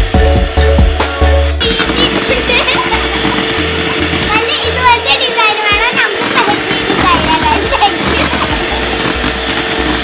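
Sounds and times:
hand mixer motor humming: 0.0s - 10.0s
music: 0.0s - 10.0s
children's voices: 1.7s - 3.5s, 4.2s - 9.0s.

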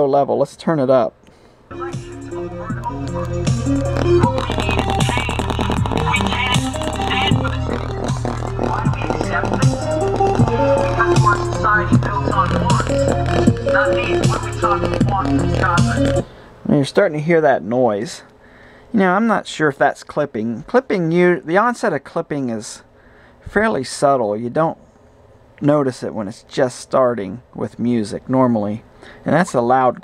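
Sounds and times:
amplifier cracking noise: 1.7s - 16.3s
song through small loudspeaker: 1.7s - 16.4s.

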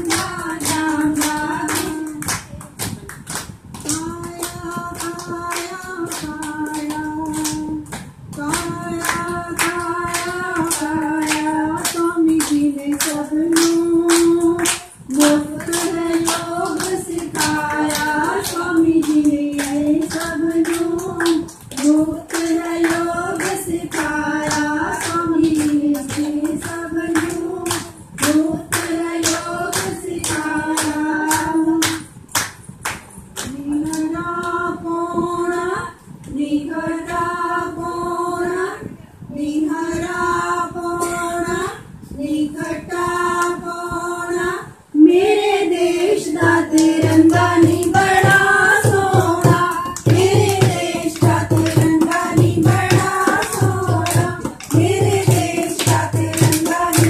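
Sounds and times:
women singing folk song: 0.0s - 2.6s, 3.8s - 32.1s, 33.4s - 57.0s
steady hand clapping: 0.0s - 34.6s, 46.0s - 57.0s.

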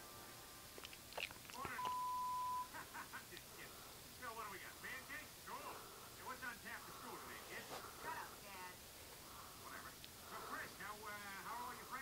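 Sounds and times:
voices from television: 0.0s - 12.0s
high beep: 1.8s - 2.7s.

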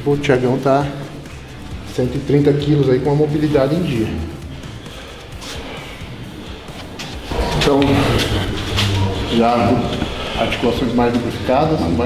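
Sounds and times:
faint background music: 0.0s - 12.0s
man speaking: 1.9s - 4.5s, 7.3s - 12.0s.

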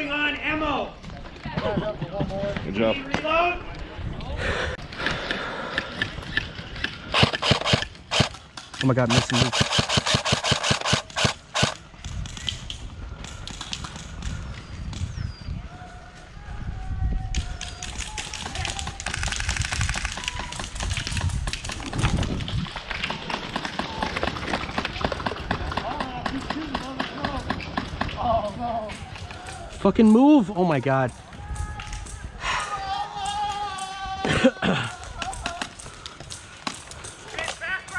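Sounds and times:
airsoft rifles firing: 6.8s - 11.8s.

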